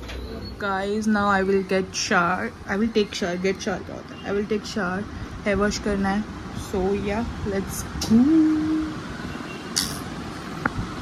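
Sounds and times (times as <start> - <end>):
short hiss: 9.8 - 10.1.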